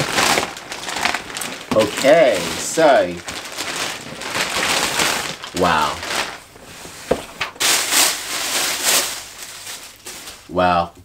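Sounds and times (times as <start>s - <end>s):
packaging rustling and crinkling: 0.0s - 10.6s.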